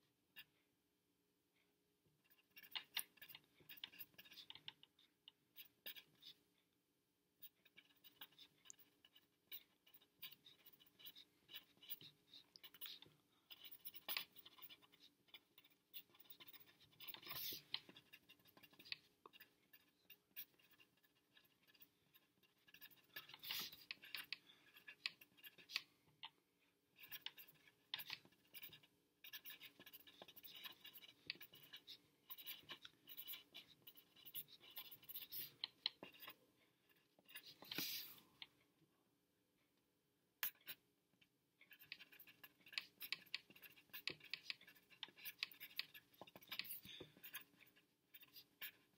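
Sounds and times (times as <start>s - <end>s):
pen scratching on paper: 2.2s - 6.6s, 7.4s - 38.5s, 40.4s - 40.8s, 41.6s - 48.9s.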